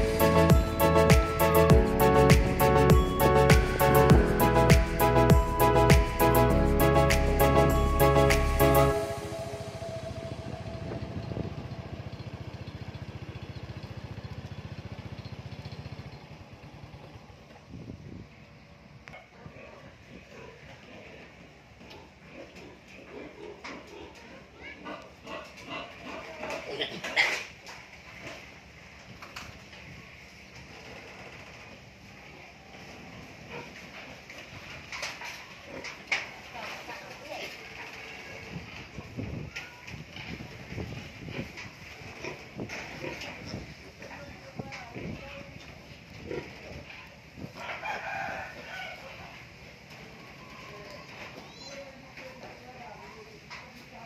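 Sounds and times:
pigs grunting: 19.4 - 27.5, 41.2 - 44.1, 46.2 - 47.0
rooster crowing: 47.6 - 49.4.

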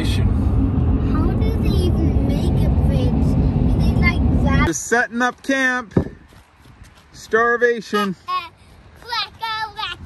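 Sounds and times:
truck road and engine rumble: 0.0 - 7.5.

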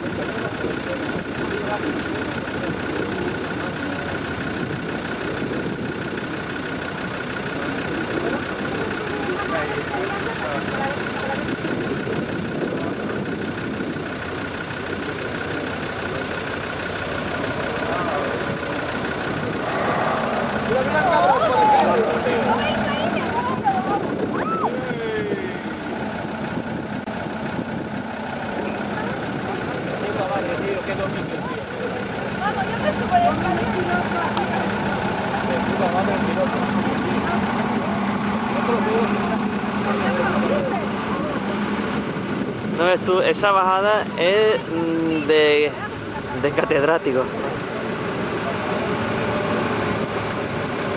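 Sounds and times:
vehicle engine running: 0.0 - 50.9
people talking: 17.8 - 25.8, 28.5 - 41.7.

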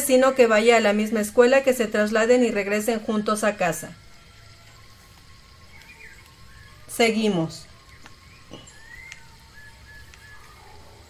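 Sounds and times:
background hiss: 0.0 - 11.0
faint steady tones: 0.0 - 11.0.

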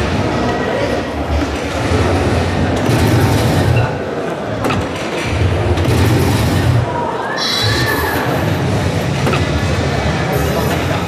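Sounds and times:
crowd noise: 0.0 - 11.0
machine noise: 1.2 - 11.0.

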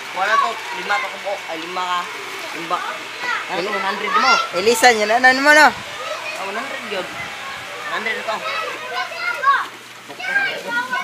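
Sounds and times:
young people talking excitedly: 0.0 - 11.0.

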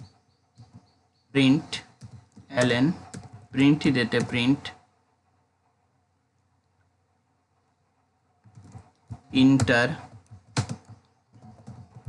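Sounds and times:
typing on computer keyboard: 0.6 - 0.9, 1.9 - 3.5, 8.4 - 12.0.

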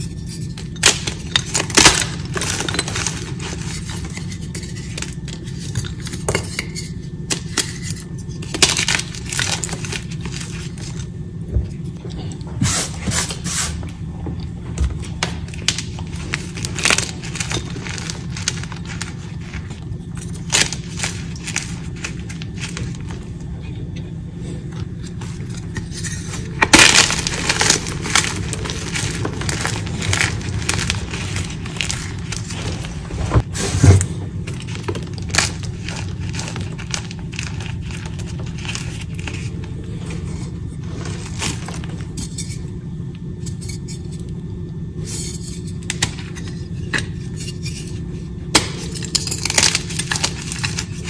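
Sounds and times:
steady low hum: 0.0 - 51.0
chalk crumbling crackles: 24.9 - 33.3.

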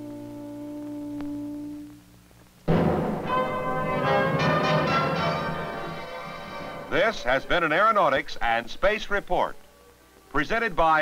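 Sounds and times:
bell-like chimes: 3.3 - 6.9.

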